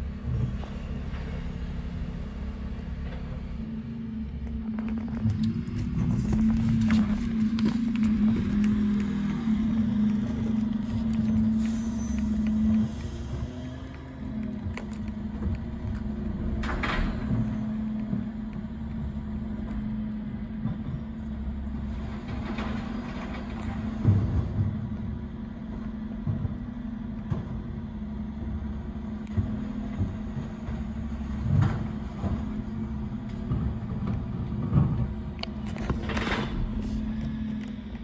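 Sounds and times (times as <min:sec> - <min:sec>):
refuse lorry engine rumbling: 0:00.0 - 0:38.0
knocks and clunks of bins: 0:14.6 - 0:19.8, 0:21.8 - 0:27.8, 0:29.2 - 0:38.0.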